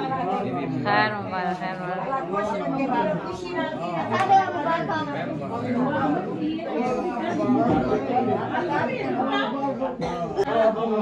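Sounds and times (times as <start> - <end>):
group chatter: 0.0 - 11.0.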